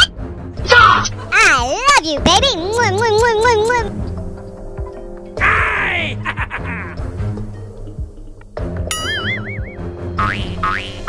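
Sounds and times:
background music: 0:00.0 - 0:11.0
wobbling boing sound effect: 0:08.9 - 0:11.0.

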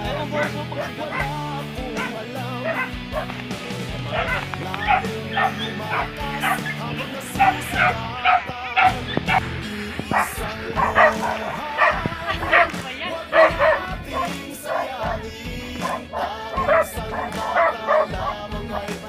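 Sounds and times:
background music: 0:00.0 - 0:19.0
dog barking: 0:00.1 - 0:03.4, 0:04.1 - 0:09.4, 0:10.0 - 0:18.4.

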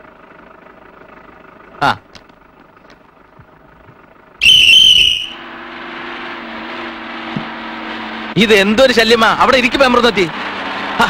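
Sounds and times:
bus engine droning: 0:00.0 - 0:11.0
whistle blast: 0:04.4 - 0:05.5.

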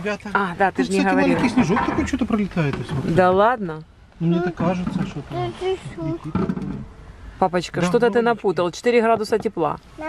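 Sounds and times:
voices talking: 0:00.0 - 0:03.6, 0:04.2 - 0:09.8.

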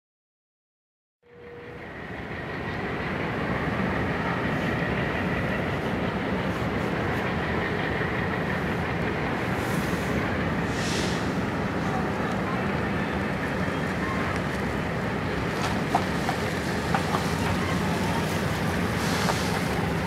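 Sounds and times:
diesel locomotive engine rumble: 0:01.3 - 0:20.0.

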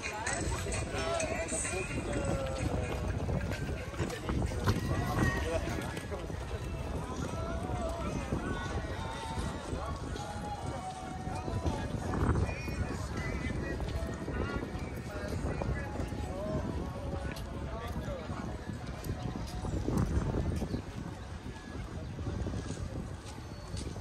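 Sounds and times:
passers-by talking: 0:00.0 - 0:24.0.

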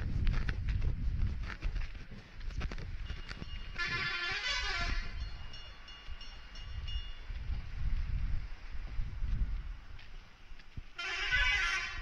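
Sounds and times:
horn-like blast: 0:03.8 - 0:05.2, 0:11.0 - 0:12.0.

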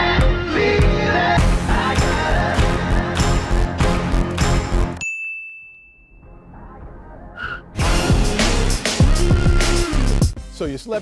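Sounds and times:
high ding: 0:05.0 - 0:06.5.

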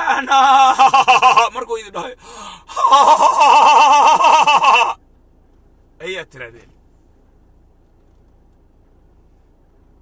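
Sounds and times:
man wailing high vocal sound: 0:02.7 - 0:05.0.

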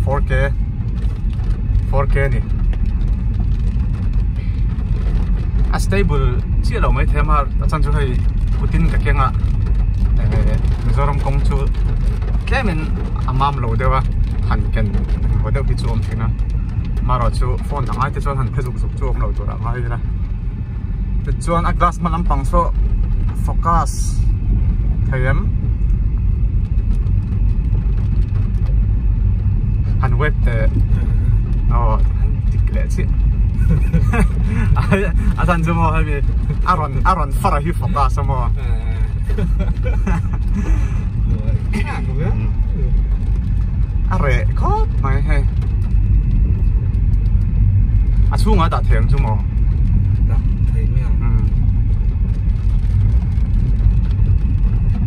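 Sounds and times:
car cabin rumble: 0:00.0 - 0:55.0.

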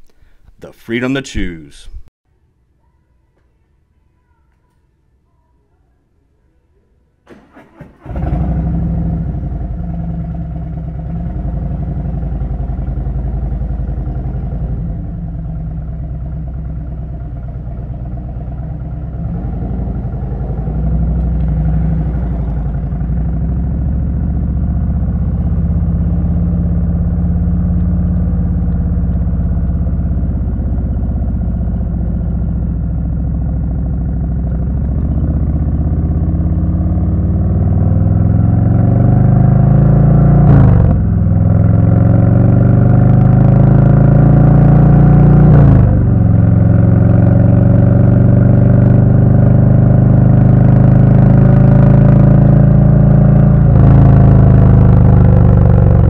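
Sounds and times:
motorcycle starter cranking: 0:07.3 - 0:09.1
motorcycle engine running: 0:07.3 - 0:56.0.

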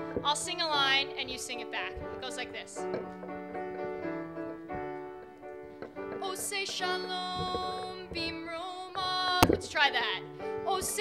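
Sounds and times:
piano playing held chords: 0:00.0 - 0:11.0.

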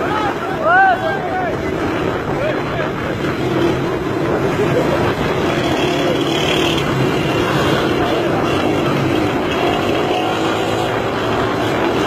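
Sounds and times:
wind on microphone: 0:00.0 - 0:12.0.

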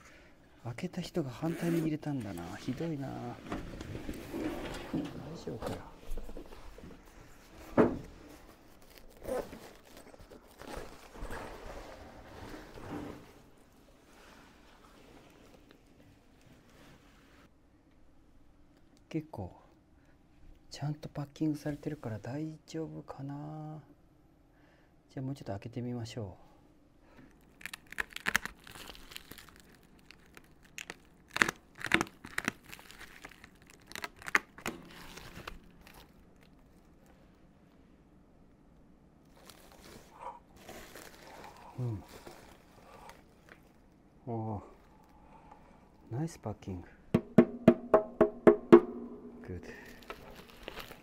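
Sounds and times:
zipper being worked: 0:01.4 - 0:01.9
fabric rustling: 0:01.4 - 0:17.5, 0:39.3 - 0:44.0, 0:49.8 - 0:51.0
plastic film crinkling and tearing: 0:08.5 - 0:11.6, 0:27.3 - 0:37.2, 0:39.2 - 0:45.2, 0:49.5 - 0:51.0.

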